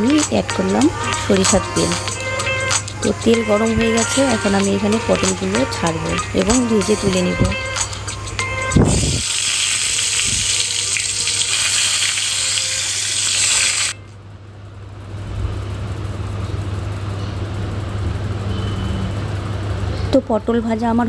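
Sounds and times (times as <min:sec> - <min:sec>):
vegetables sizzling in hot oil: 0:08.9 - 0:14.0.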